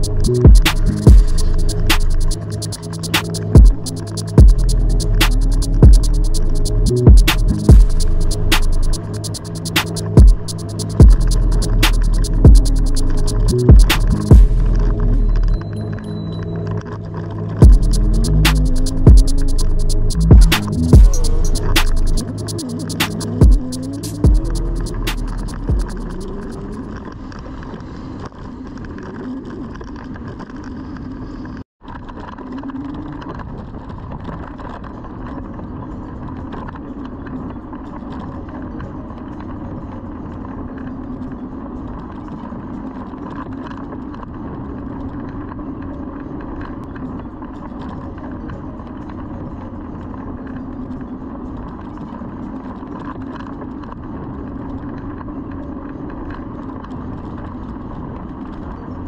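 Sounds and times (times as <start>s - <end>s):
constant low hum: 0.0s - 59.0s.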